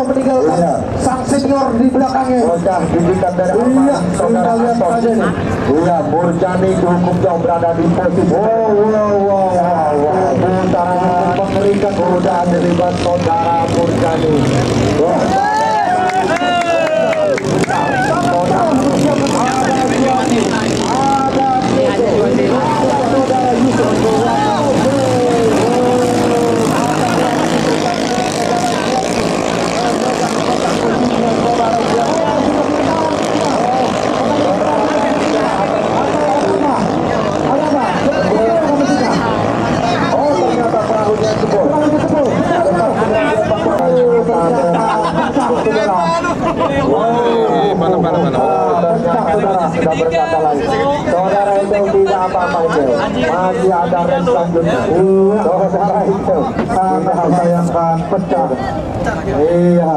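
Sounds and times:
man's voice: 0.0 - 59.9
small boat engines droning: 0.0 - 59.9.

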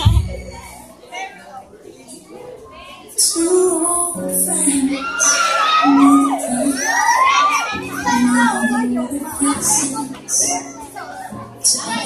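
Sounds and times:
song music: 0.0 - 1.1, 2.6 - 12.0
audience shouting and cheering: 4.6 - 9.2.

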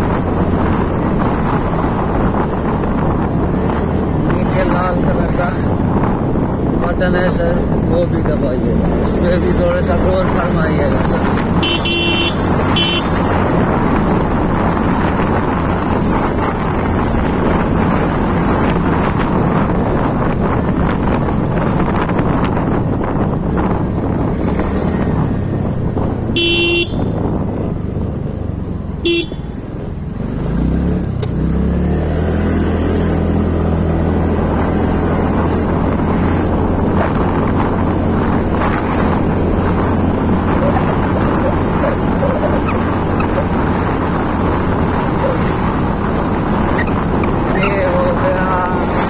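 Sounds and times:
wind on microphone: 0.0 - 49.0
scooter horn beeping: 11.6 - 13.2, 26.4 - 27.2, 29.0 - 29.6.

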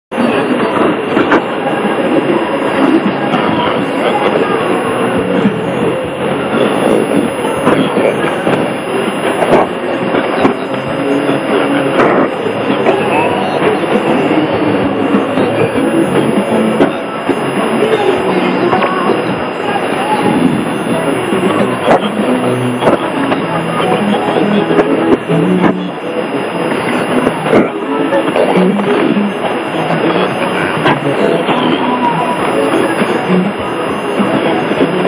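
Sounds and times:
faint radio station audio: 0.1 - 35.0
radio hiss and static: 0.1 - 35.0.

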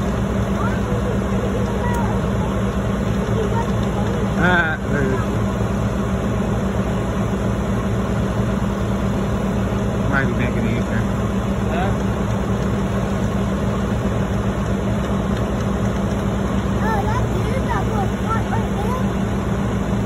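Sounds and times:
truck diesel engine running: 0.0 - 20.0.

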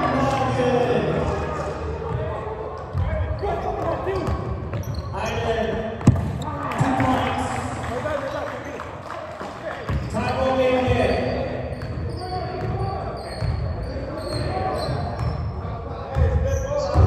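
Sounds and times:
echoing voices in a hall: 0.0 - 17.0.

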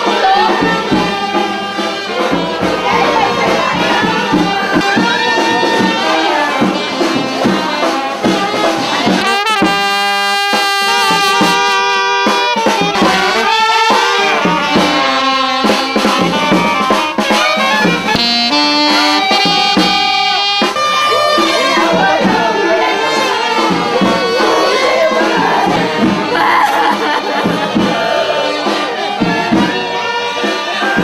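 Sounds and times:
brass band horns playing slow melody: 0.0 - 26.4, 27.0 - 31.0
bass drum beats: 0.0 - 31.0.

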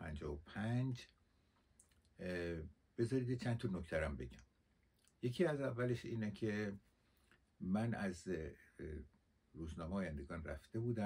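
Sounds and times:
man's voice holding a vowel: 0.0 - 1.0, 2.2 - 4.4, 7.6 - 9.0, 9.6 - 11.0.

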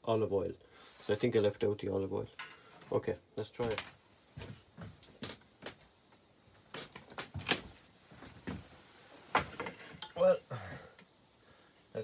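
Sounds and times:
knocks and clunks: 9.3 - 10.2.

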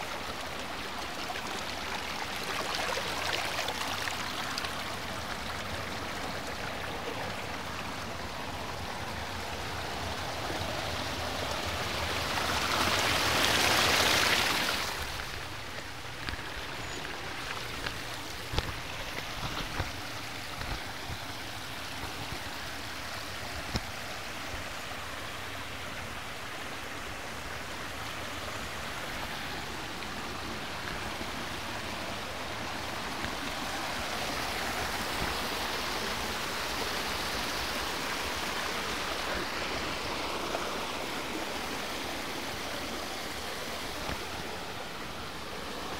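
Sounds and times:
water rushing over rocks: 0.0 - 45.9.

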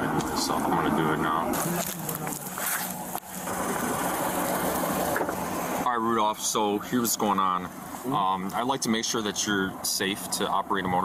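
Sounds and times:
car engine idling: 0.0 - 11.0
outdoor noise: 0.0 - 11.0.

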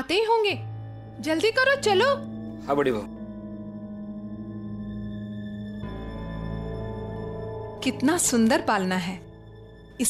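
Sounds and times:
droning background music: 0.0 - 10.0.

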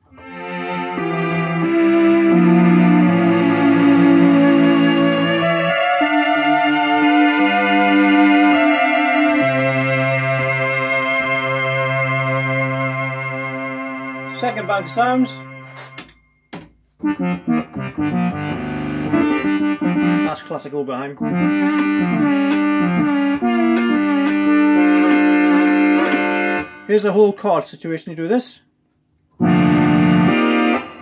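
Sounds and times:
synthesizer sustained chords: 0.0 - 16.2, 17.0 - 20.3, 21.2 - 26.9, 29.4 - 31.0.

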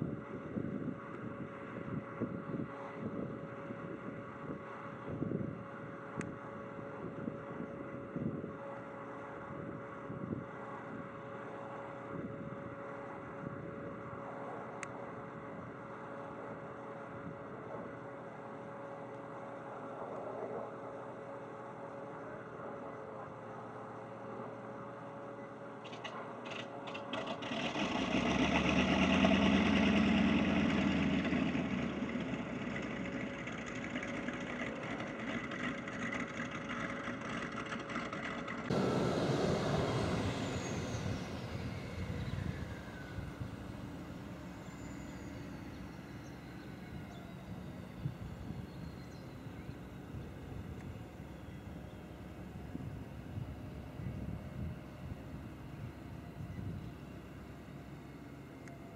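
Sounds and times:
plane engine whine climbing: 0.0 - 58.9
small plane engine passing: 24.2 - 58.9.

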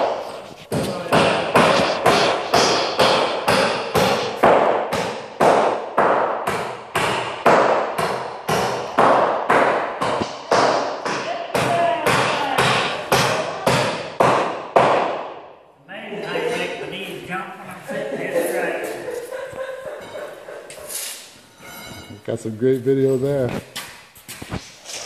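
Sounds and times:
hammer nailing wooden boards: 0.0 - 15.3.

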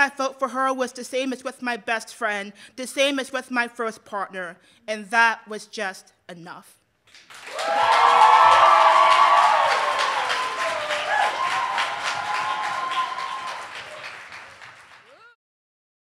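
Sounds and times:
audience applauding and cheering: 7.1 - 15.4.

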